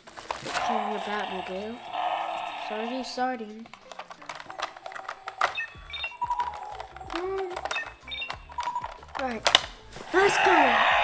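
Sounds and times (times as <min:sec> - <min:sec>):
toy handling clicks: 0:00.3 - 0:11.0
toy electronic beeps and tones: 0:00.6 - 0:03.2, 0:04.3 - 0:09.0.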